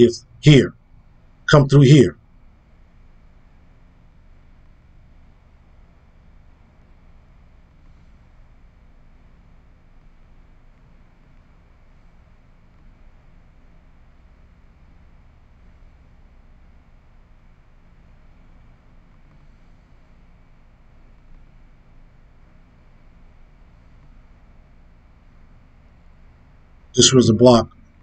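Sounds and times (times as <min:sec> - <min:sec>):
faint low room tone hiss: 0:00.0 - 0:28.0.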